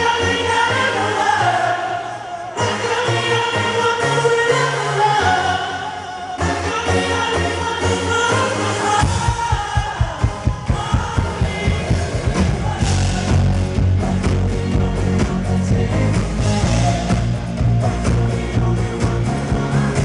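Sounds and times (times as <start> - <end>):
live pop band: 0.0 - 20.0
man singing: 0.0 - 20.0
drum beat: 9.0 - 14.4.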